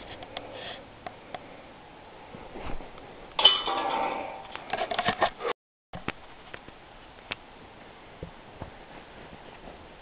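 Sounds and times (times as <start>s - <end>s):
disc striking metal basket: 3.4s - 5.3s.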